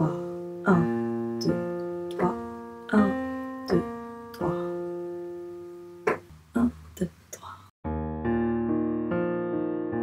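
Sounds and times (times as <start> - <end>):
piano arpeggio notes: 0.0 - 6.4, 7.8 - 10.0.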